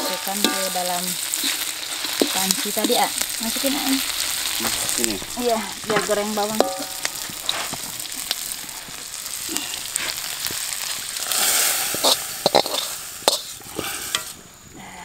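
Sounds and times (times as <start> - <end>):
metal spatula scraping a pan: 0.0 - 4.9, 5.8 - 14.4
food sizzling in oil: 0.0 - 14.7.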